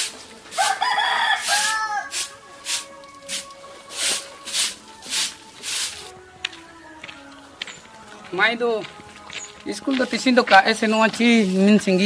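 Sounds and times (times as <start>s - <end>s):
broom sweeping dirt floor: 0.0s - 6.2s, 9.9s - 12.0s
rooster crowing: 0.5s - 2.6s.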